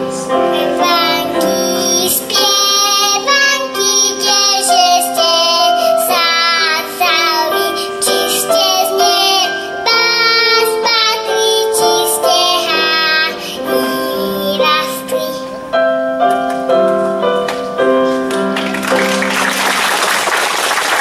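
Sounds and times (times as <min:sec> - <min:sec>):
keyboard accompaniment: 0:00.0 - 0:21.0
girl singing folk song: 0:00.1 - 0:15.8.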